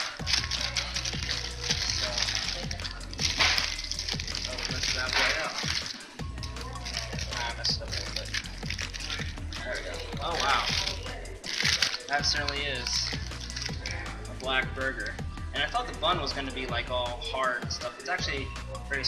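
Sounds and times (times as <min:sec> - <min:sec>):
paper wrapper crinkling: 0:00.0 - 0:14.0
background music: 0:00.0 - 0:19.0.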